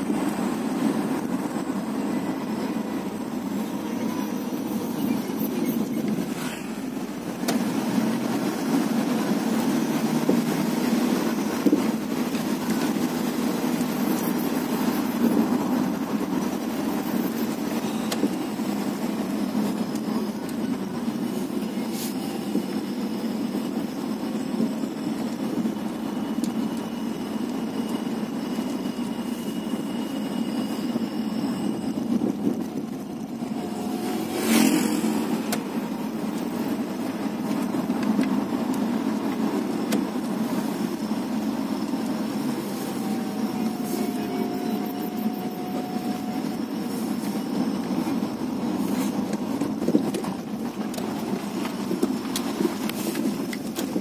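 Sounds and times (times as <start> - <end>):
car engine and road noise: 0.0 - 54.0
vehicle passing by: 33.8 - 36.1.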